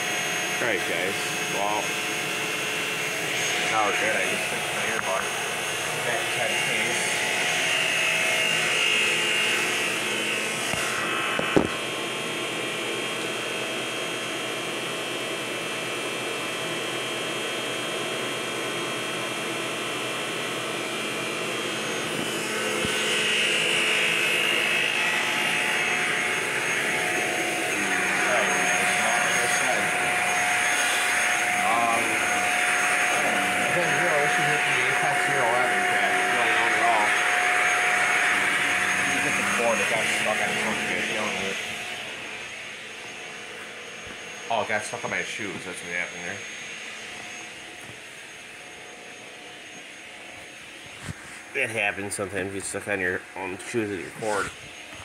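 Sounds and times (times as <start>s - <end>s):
vacuum cleaner running over carpet: 0.0s - 55.0s.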